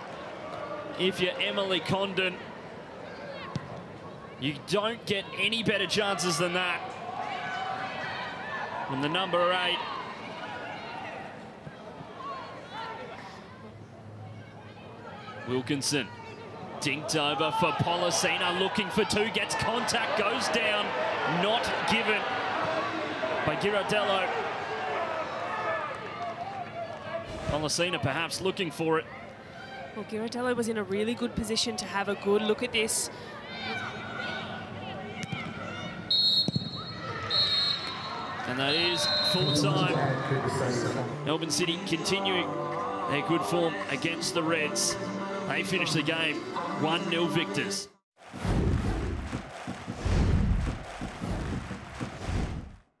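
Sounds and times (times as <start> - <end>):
murmur of crowd voices: 0.0 - 47.8
whoosh: 48.2 - 52.8.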